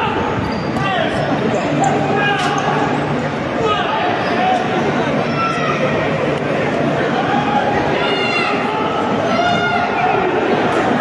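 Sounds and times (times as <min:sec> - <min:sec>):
spectators shouting in echoing hall: 0:00.0 - 0:11.0.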